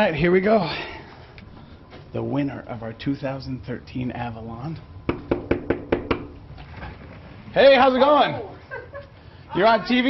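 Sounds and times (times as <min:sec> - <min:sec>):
knuckles knocking on door: 0:05.1 - 0:06.3.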